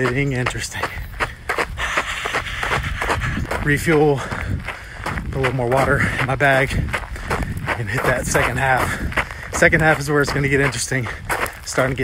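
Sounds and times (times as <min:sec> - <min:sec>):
running footsteps on a trail: 0:00.0 - 0:12.0.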